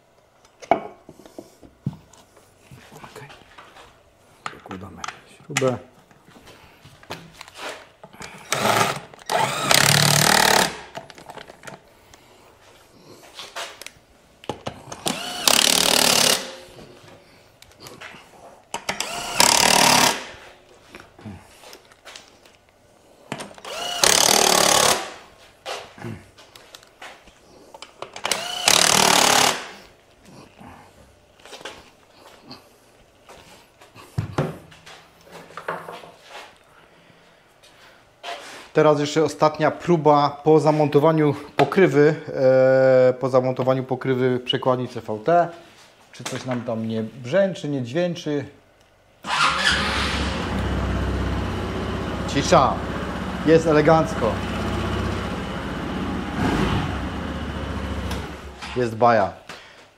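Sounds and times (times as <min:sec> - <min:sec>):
impact driver bursts: 0:08.5 - 0:10.9, 0:15.0 - 0:16.6, 0:18.9 - 0:20.3, 0:23.6 - 0:25.2, 0:28.2 - 0:29.8.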